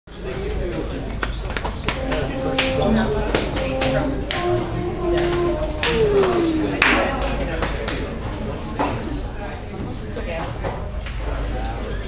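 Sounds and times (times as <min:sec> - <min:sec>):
ensemble playing held notes: 0:00.3 - 0:09.3.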